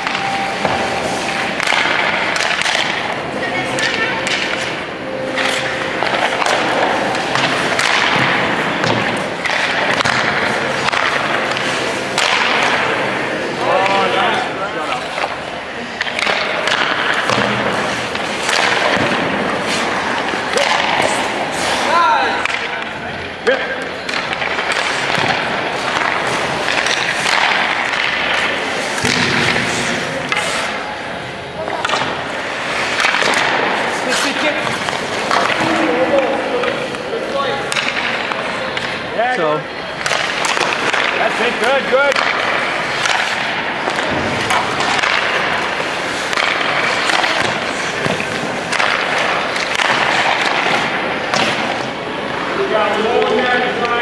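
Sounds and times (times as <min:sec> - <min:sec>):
skate blades scraping ice: 0:00.0 - 0:22.5, 0:24.2 - 0:31.2, 0:31.8 - 0:39.0, 0:39.9 - 0:53.8
pucks and sticks clacking: 0:00.0 - 0:54.0.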